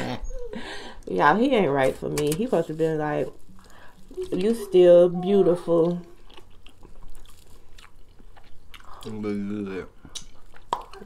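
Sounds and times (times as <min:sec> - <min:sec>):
chewing with crunchy clicks: 0:05.6 - 0:09.4, 0:10.0 - 0:11.0.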